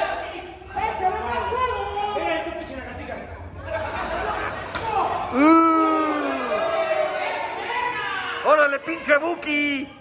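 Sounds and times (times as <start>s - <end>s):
loud drawn-out shout: 3.6s - 9.3s.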